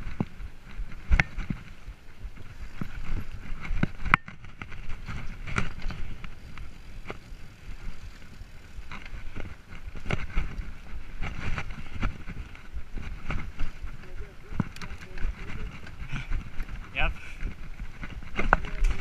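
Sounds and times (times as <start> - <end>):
bike clicks and rattles: 0.0 - 19.0
bike tyres rumbling: 0.0 - 19.0
wind on microphone: 0.0 - 19.0.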